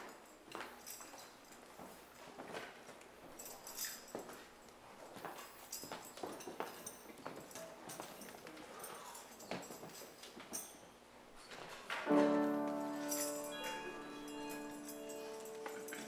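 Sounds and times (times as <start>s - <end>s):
faint footsteps on hard floor: 0.2s - 10.7s, 11.4s - 16.0s.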